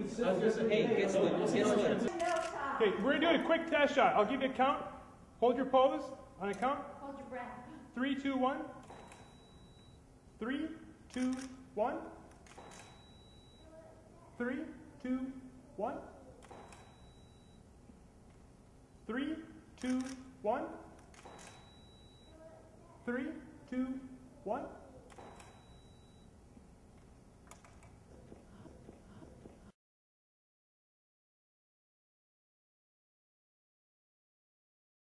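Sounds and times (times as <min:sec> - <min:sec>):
camera shutter click: 0:02.1 - 0:02.6, 0:08.8 - 0:09.4, 0:11.1 - 0:11.6, 0:12.3 - 0:13.2, 0:16.4 - 0:17.2, 0:19.8 - 0:20.3, 0:21.0 - 0:22.2, 0:25.1 - 0:25.9.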